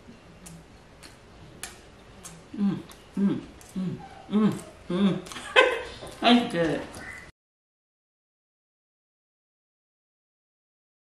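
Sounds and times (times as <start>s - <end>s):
wet lip smacks: 0.4s - 3.0s
sharp mouth clicks: 0.4s - 5.4s.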